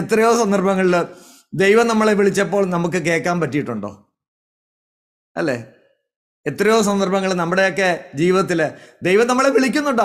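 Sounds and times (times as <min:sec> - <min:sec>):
man speaking: 0:00.0 - 0:04.0, 0:05.4 - 0:05.8, 0:06.5 - 0:10.0.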